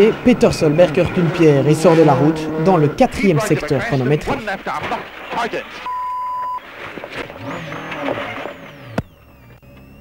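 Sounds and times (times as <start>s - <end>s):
rally car engine on gravel: 0.0s - 10.0s
short high beep: 5.9s - 6.6s.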